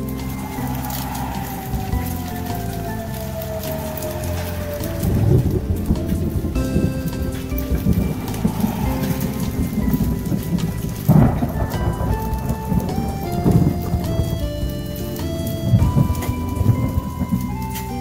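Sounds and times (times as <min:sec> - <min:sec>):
background music with held notes: 0:00.0 - 0:18.0
rain and hail pattering: 0:00.0 - 0:18.0
thunder rumbling: 0:00.0 - 0:18.0.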